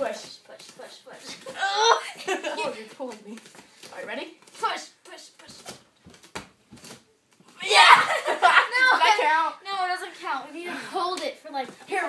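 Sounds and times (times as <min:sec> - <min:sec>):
girls laughing loudly: 0:07.6 - 0:09.3.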